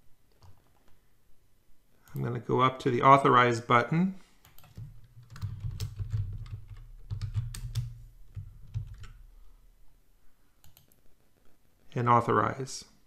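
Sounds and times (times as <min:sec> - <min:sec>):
computer keyboard keys clicking: 0:04.4 - 0:09.2, 0:10.6 - 0:11.0.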